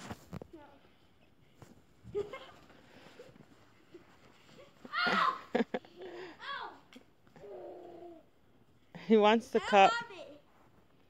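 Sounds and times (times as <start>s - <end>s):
children's voices playing: 4.8s - 6.9s
child shouting: 4.9s - 5.6s, 6.4s - 6.8s.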